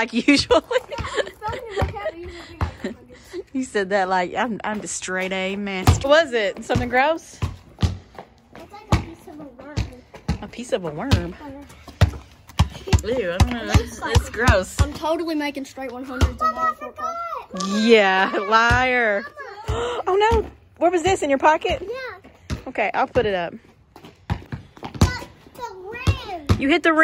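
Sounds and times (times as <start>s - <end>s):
ball bouncing on concrete: 0.0s - 16.7s, 17.6s - 27.0s
child's voice: 8.5s - 10.2s, 15.2s - 20.0s, 21.8s - 22.3s, 25.0s - 26.6s.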